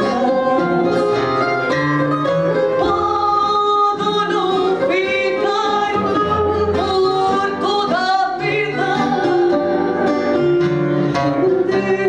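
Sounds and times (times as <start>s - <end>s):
woman singing: 0.0s - 1.4s, 2.7s - 10.2s, 11.2s - 12.0s
classical guitar: 0.0s - 12.0s
plucked guitar: 0.0s - 12.0s.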